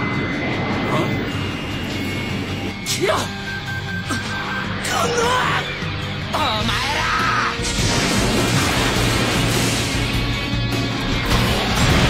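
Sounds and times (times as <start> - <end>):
jet-like thruster rushing: 0.0 - 12.0.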